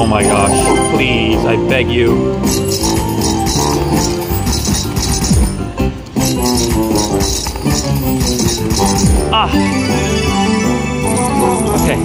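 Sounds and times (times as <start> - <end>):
slot machine reels spinning: 0.0 - 1.7, 2.4 - 10.1, 10.7 - 12.0
jingly slot machine music: 0.0 - 12.0.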